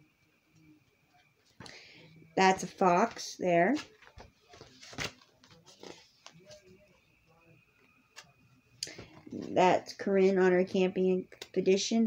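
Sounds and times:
book pages rustling: 2.9s - 6.7s.

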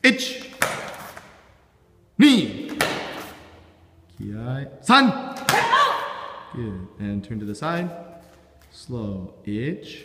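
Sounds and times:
person shouting a count: 4.9s - 6.6s.

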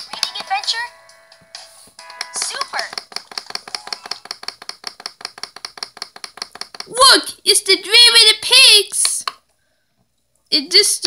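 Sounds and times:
rapid clicking: 2.1s - 7.0s.

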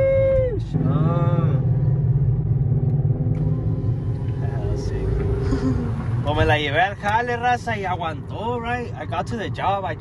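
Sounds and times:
truck engine and road noise: 0.0s - 10.0s.

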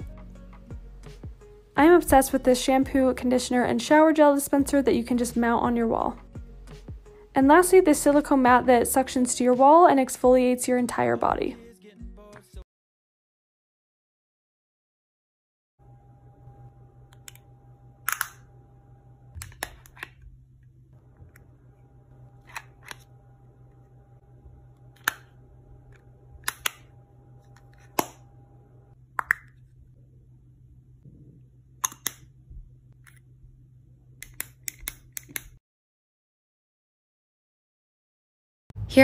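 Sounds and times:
steady low hum: 15.8s - 35.6s
plastic compacts clicking: 24.9s - 25.3s, 25.9s - 26.8s, 31.8s - 32.3s.

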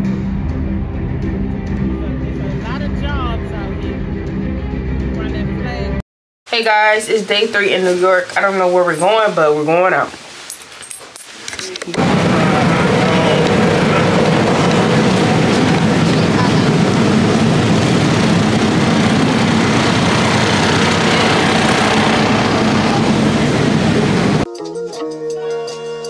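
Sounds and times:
crowd chatter: 11.5s - 17.2s, 19.4s - 24.4s
traffic: 11.6s - 24.5s.

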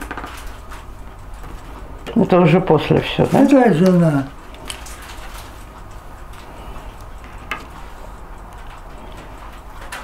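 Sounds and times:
album page turning: 0.0s - 1.6s, 3.2s - 5.7s.

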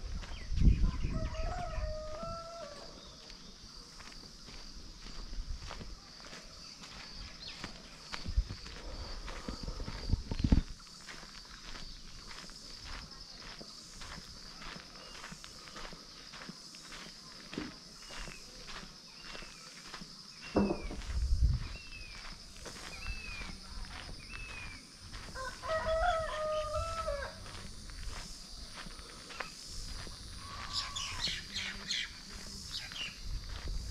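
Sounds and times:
footsteps on dirt path: 0.0s - 33.9s
rooster crowing: 0.8s - 3.1s, 25.2s - 27.5s.

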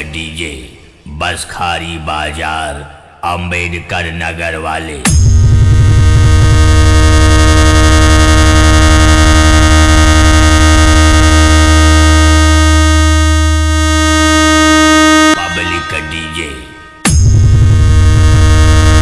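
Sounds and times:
voice sample: 2.6s - 19.0s
electronic dance music: 5.1s - 19.0s.

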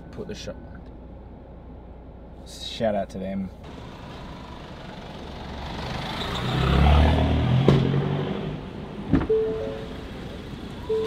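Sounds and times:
vehicle passing by: 3.8s - 9.0s
short beeping tones: 9.3s - 9.9s.

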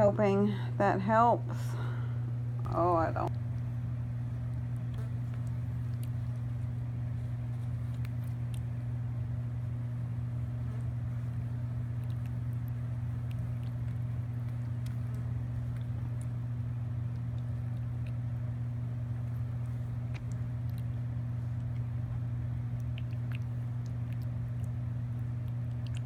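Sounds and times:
low steady hum: 0.0s - 26.0s
piglet lapping and slurping: 3.3s - 26.0s.

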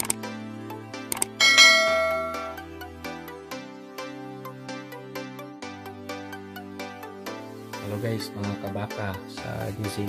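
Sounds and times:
mouse clicks: 0.0s - 0.2s, 1.1s - 1.4s
background music: 0.0s - 10.0s
bright bell chime: 1.4s - 2.7s.

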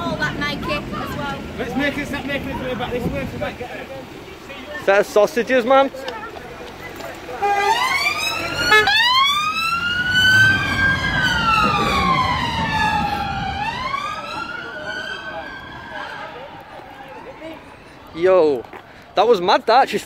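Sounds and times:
police siren wailing: 7.4s - 18.5s.

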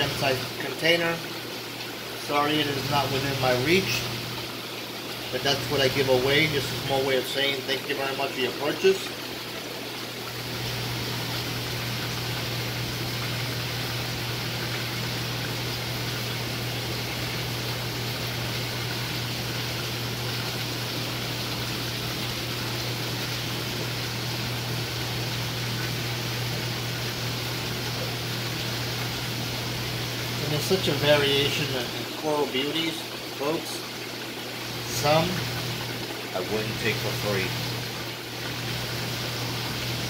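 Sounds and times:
low pump hum: 0.0s - 40.0s
water rushing through pipes: 0.0s - 40.0s.

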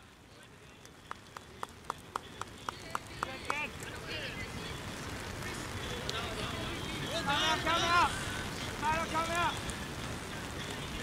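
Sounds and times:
steady background hiss: 0.0s - 11.0s
players shouting: 6.4s - 9.7s.

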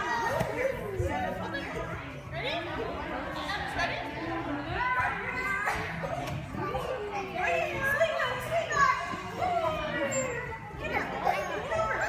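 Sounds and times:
adults talking: 0.0s - 12.0s.

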